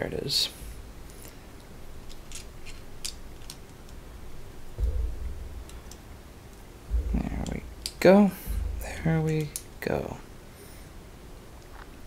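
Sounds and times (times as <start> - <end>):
low bump: 0.5 - 3.3, 4.0 - 10.3
plastic pieces clicking: 2.0 - 4.0.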